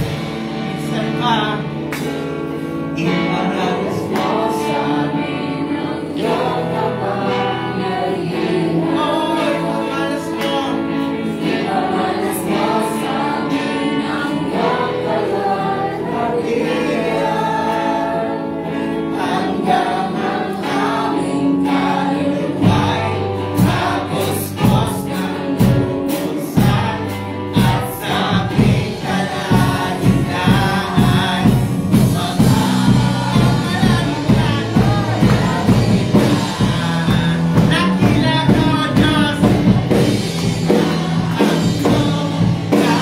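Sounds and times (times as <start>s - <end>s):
group singing: 0.0s - 43.0s
worship band playing: 0.0s - 43.0s.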